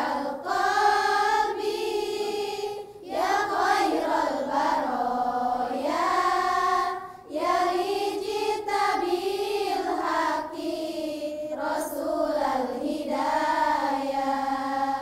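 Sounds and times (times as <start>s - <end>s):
girls choir singing: 0.0s - 15.0s.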